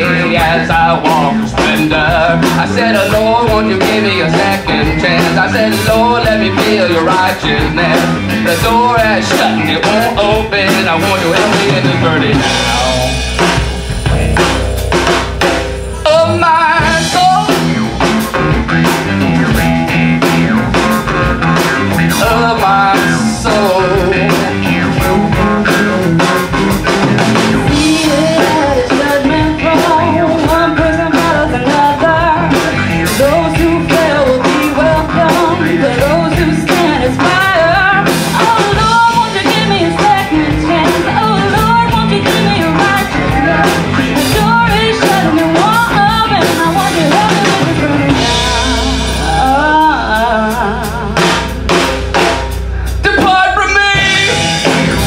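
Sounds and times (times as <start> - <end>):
person singing: 0.0 - 13.5, 15.9 - 19.0, 21.0 - 51.8, 52.6 - 55.0
drum kit: 0.0 - 55.0
electric guitar: 0.0 - 55.0.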